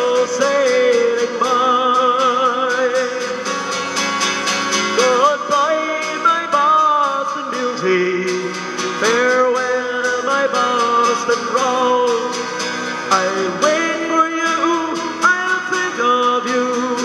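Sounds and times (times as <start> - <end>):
man singing folk ballad: 0.0 - 17.0
strummed acoustic guitar: 0.0 - 17.0.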